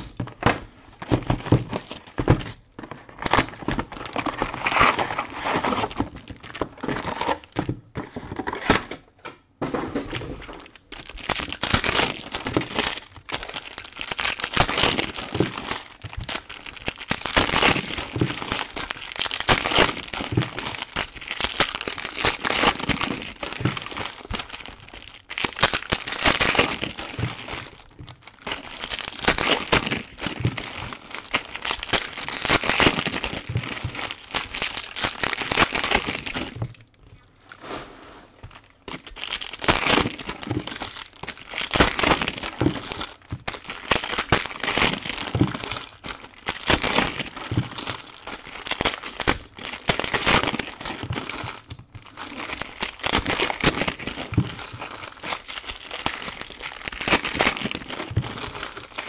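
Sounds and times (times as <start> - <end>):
foil wrappers tearing and crinkling: 1.0 - 8.8, 10.1 - 36.9, 38.4 - 59.0.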